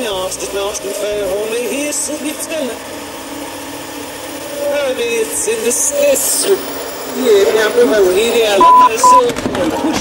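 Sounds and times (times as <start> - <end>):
reversed speech: 4.6 - 9.2
radio static hiss: 4.7 - 9.2.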